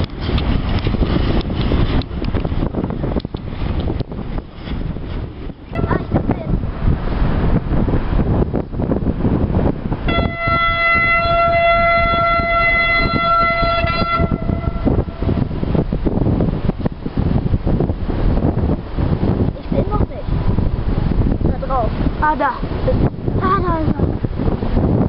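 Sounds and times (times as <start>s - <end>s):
wind noise on microphone: 0.0s - 25.0s
locomotive horn: 5.7s - 6.3s, 10.1s - 15.7s.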